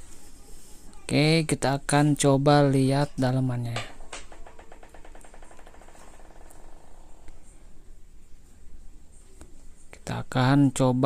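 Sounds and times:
screw bouncing on ceramic tile: 3.7 - 7.3.

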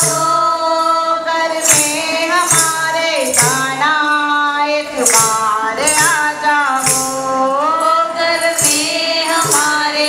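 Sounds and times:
tambourine jingling: 0.0 - 10.0
women singing devotional song: 0.0 - 10.0.

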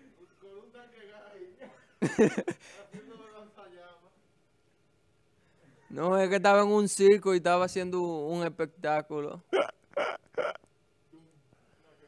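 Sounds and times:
breathy laughter: 9.6 - 10.6.

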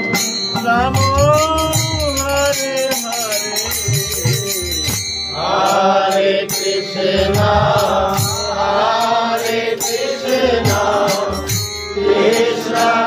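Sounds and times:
harmonium chords: 0.0 - 13.0
low rhythmic thumps: 0.0 - 13.0
man singing a chant: 0.2 - 13.0.

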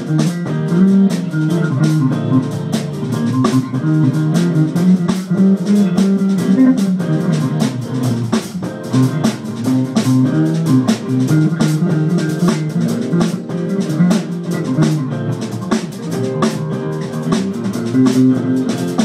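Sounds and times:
drum kit with cymbals: 0.0 - 19.0
electric guitar through amp: 0.0 - 19.0.

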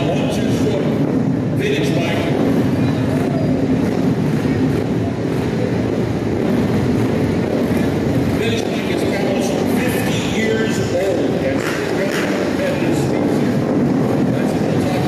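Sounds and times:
motorcycle engines revving: 0.0 - 15.0.

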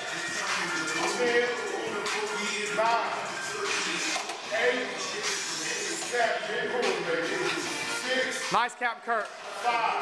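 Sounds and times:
indistinct voices: 0.0 - 8.6
background music: 0.0 - 10.0.

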